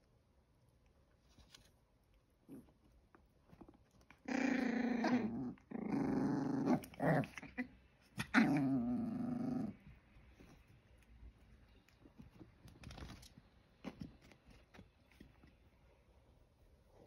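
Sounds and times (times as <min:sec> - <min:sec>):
puppy growling: 0:04.1 - 0:10.0.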